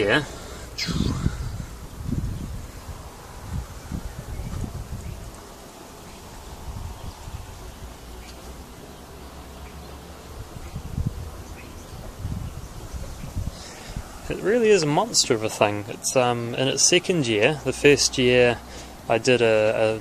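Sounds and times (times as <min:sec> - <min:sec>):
wind buffeting the microphone: 0:00.0 - 0:08.3, 0:10.3 - 0:14.8
faint steady hiss: 0:00.0 - 0:20.0.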